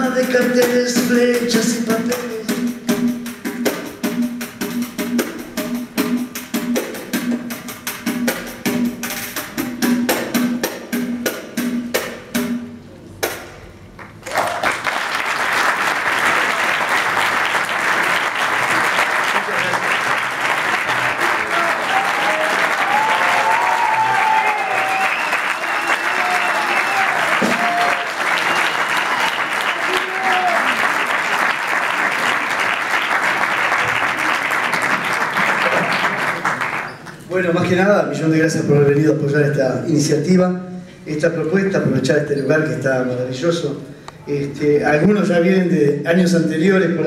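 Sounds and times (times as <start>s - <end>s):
audience clapping: 14.0s - 37.4s
people cheering: 14.2s - 37.0s.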